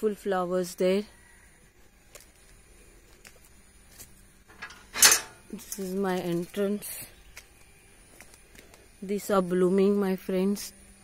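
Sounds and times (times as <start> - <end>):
woman's voice: 0.0 - 1.2, 5.5 - 7.2, 9.0 - 10.8.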